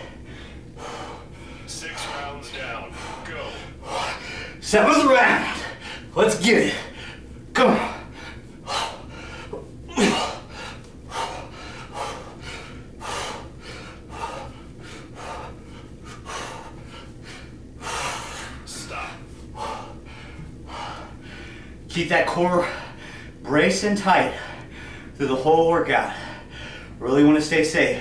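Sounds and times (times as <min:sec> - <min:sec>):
man breathing hard: 0:00.0 - 0:04.7, 0:05.4 - 0:25.2, 0:25.9 - 0:27.0
steady low hum: 0:00.0 - 0:28.0.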